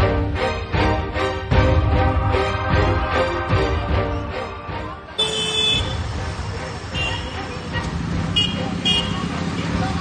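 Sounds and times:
road traffic: 0.0 - 10.0
voices in the street: 0.0 - 10.0
vehicle horn toots: 5.2 - 6.1, 6.9 - 7.5, 8.3 - 9.3.

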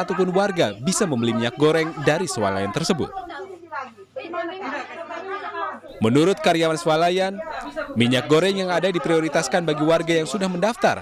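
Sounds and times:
people arguing: 0.0 - 11.0.

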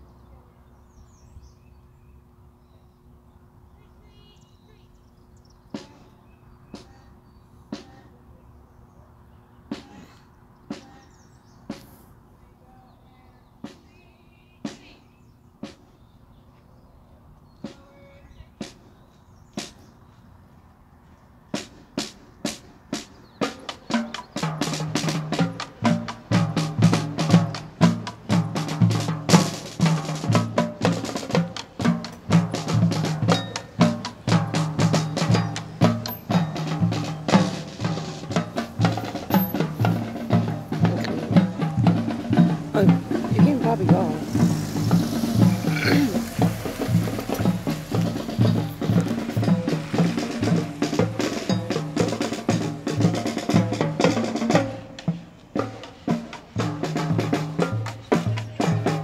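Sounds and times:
drums: 0.0 - 59.0
marching band playing: 5.7 - 8.2, 9.7 - 10.1, 10.7 - 11.9, 21.5 - 59.0
low horn notes: 38.9 - 50.8.

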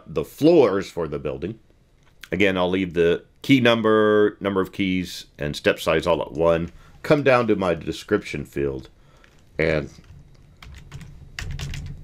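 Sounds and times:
typing on computer keyboard: 10.0 - 12.0.

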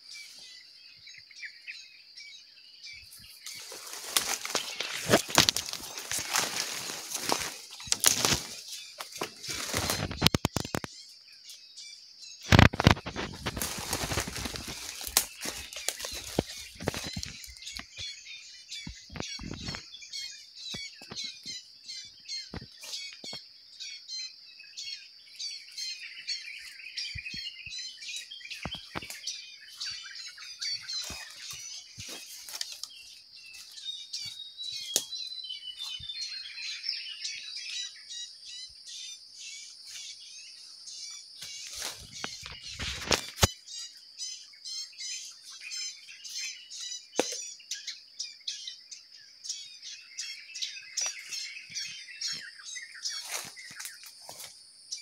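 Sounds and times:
birds chirping rapidly: 0.0 - 55.0
loud rustle: 12.5 - 17.4.

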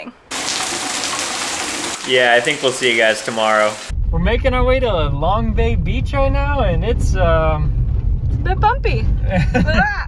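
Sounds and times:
heavy rain falling: 0.3 - 3.9.

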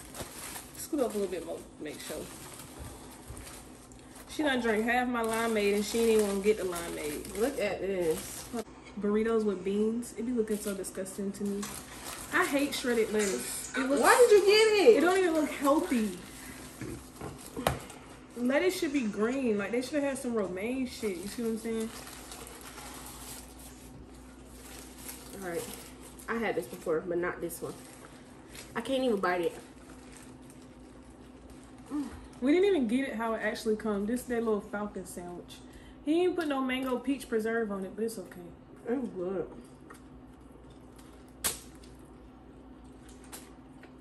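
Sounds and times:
paper wrapping crinkling: 0.0 - 8.7, 10.2 - 19.0, 19.8 - 32.6
faint steady hum: 0.0 - 44.0.

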